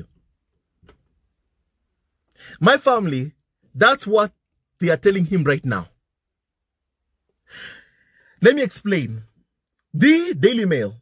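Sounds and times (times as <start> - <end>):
man breathing through mouth: 7.4 - 8.4.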